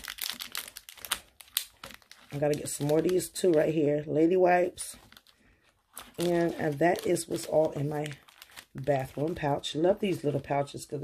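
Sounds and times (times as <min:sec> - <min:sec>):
plastic packets crinkling: 0:00.0 - 0:10.7.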